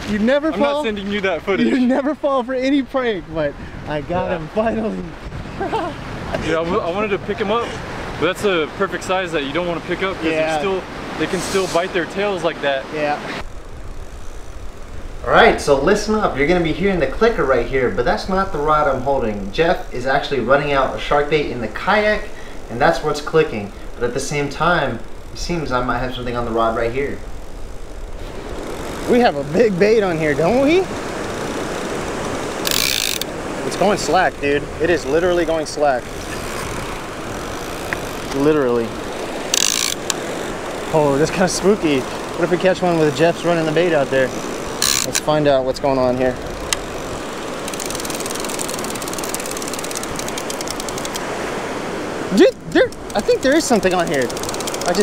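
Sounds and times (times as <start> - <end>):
surf: 0.0 - 55.0
wind noise on microphone: 2.6 - 9.0
fishing reel clicker ratcheting: 31.5 - 33.3, 36.4 - 38.5, 39.1 - 41.0, 44.2 - 45.3, 46.4 - 51.3, 52.5 - 55.0.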